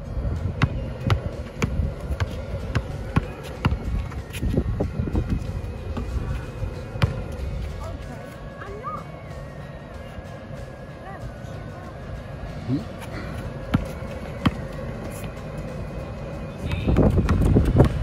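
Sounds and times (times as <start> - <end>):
background music: 0.0 - 18.0
basketball bouncing on asphalt: 0.4 - 7.5, 13.5 - 15.0, 16.7 - 18.0
voices: 5.8 - 17.3.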